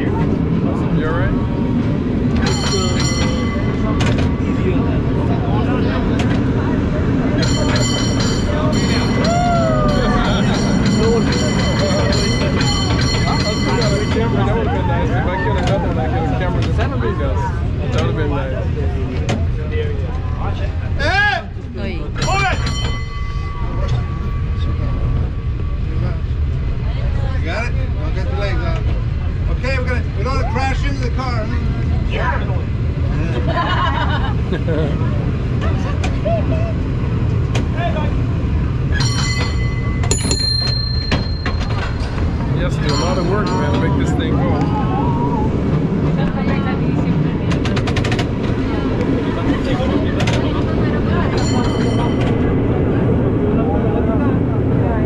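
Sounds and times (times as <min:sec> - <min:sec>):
cable car rumbling on tracks: 0:00.0 - 0:55.0
passengers talking: 0:00.0 - 0:55.0
cable car bell clanging: 0:02.3 - 0:15.9, 0:22.1 - 0:26.5, 0:38.7 - 0:53.1.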